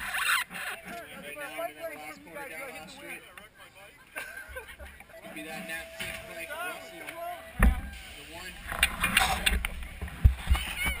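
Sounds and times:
people's voices: 0.0s - 11.0s
low thumps: 5.7s - 8.0s.

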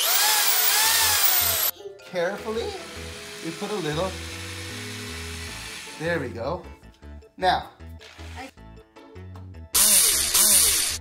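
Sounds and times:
electric drill boring into wall: 0.0s - 1.7s, 2.8s - 6.0s, 9.8s - 11.0s.

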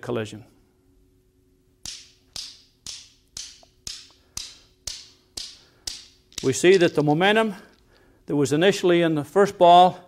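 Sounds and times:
newton's cradle balls clacking: 1.9s - 7.2s.

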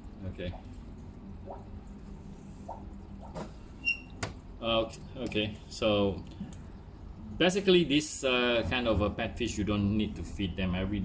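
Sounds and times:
aquarium filter pump humming: 0.0s - 11.0s.

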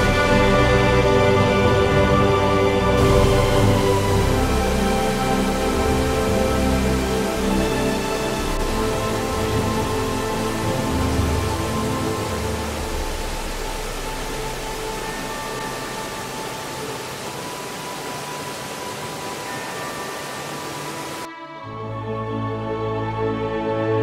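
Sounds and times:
falling water rushing: 0.0s - 21.3s.

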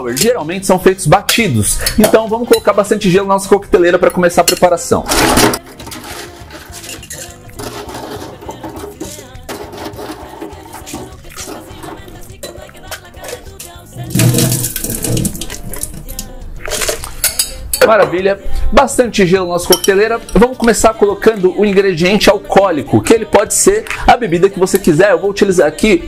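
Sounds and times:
background music: 0.0s - 26.0s
ice cubes clattering in metal shaker: 5.1s - 17.6s.

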